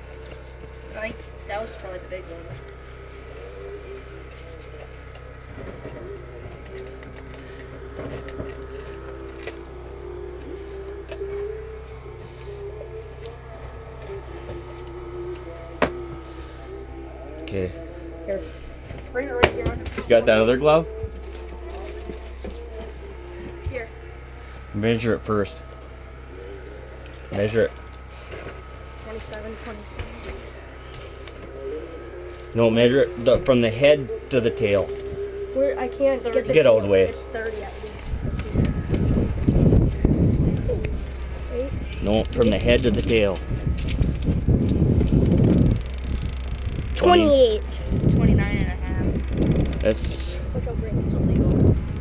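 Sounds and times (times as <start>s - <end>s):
faint voices: 0.0s - 52.0s
low mechanical hum: 0.0s - 52.0s.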